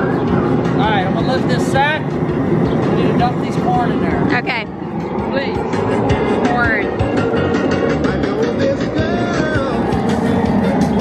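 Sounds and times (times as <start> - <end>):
loud rushing burner noise: 0.0 - 11.0.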